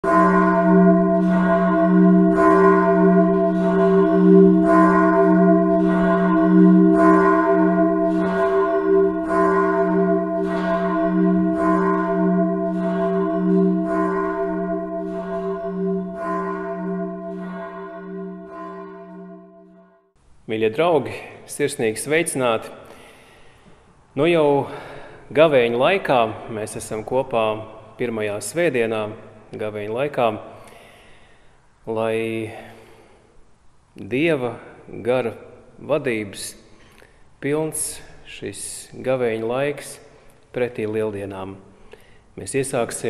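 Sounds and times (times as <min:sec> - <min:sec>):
church bell tolling: 0:00.0 - 0:20.0.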